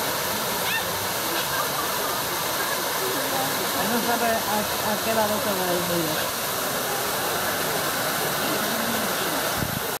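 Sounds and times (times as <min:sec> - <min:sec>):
hiss of falling water: 0:00.0 - 0:10.0.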